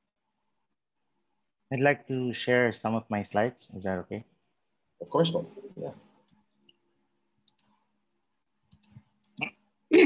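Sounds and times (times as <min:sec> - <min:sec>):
computer mouse clicks: 0:07.4 - 0:07.8, 0:08.7 - 0:09.5.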